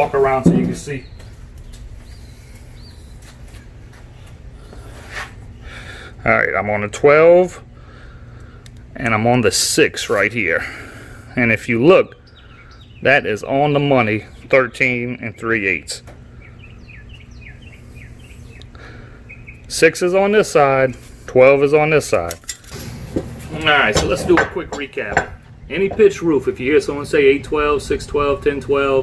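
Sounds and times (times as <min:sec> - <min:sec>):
small birds chirping: 0:00.0 - 0:06.2, 0:10.6 - 0:22.2
steady low hum: 0:00.0 - 0:29.0
small bird chirping: 0:16.3 - 0:19.7
low background rumble: 0:22.9 - 0:29.0.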